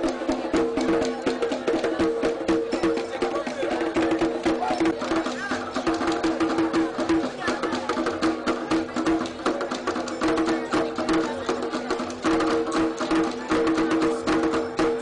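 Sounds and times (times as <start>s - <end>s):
drum strikes: 0.0s - 15.0s.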